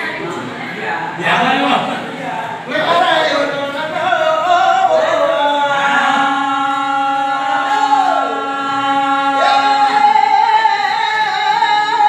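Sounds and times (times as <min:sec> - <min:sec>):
men singing folk style: 0:02.8 - 0:12.0.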